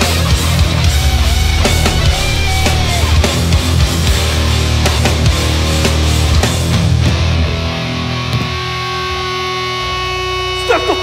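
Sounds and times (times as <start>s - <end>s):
ringing electric guitar chord: 0.0s - 5.7s.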